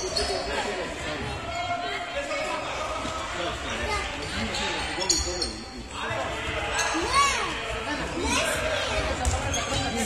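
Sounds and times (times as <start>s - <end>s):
ball bouncing on hall floor: 9.1s - 9.9s.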